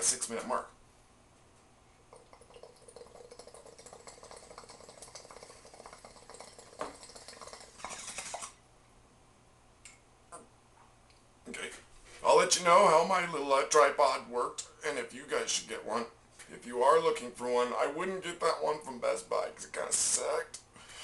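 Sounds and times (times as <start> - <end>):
water bubbling in a bong: 2.1 - 8.5.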